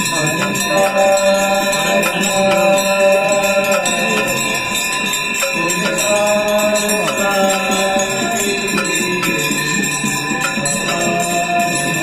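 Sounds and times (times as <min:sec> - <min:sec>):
bells ringing: 0:00.0 - 0:12.0
hymn chanted and sung: 0:00.0 - 0:12.0.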